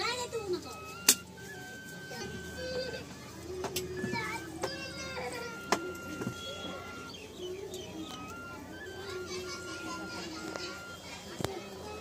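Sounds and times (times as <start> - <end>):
faint children's voices: 0.0 - 12.0
music: 0.0 - 12.0.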